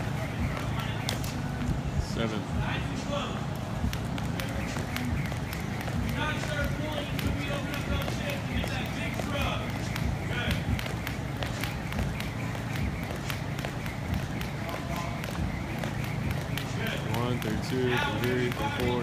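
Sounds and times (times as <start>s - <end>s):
jump rope slapping floor: 0.0s - 1.8s, 2.5s - 19.0s.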